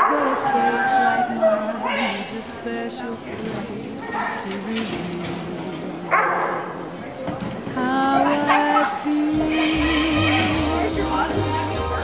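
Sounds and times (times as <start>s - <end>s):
dog barking: 6.1s - 6.7s, 8.4s - 9.0s
song: 7.8s - 12.0s.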